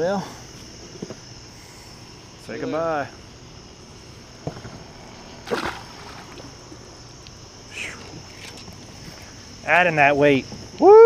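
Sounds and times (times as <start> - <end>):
crickets chirring: 0.0 - 11.0
knock or splash: 5.5 - 6.4.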